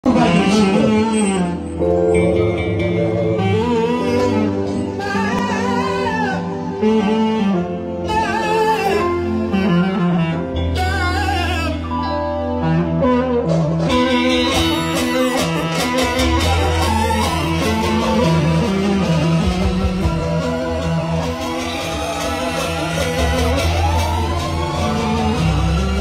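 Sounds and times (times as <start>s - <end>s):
clarinet-led band music: 0.0s - 26.0s
sustained bass line: 0.0s - 26.0s
drum beat: 19.0s - 26.0s.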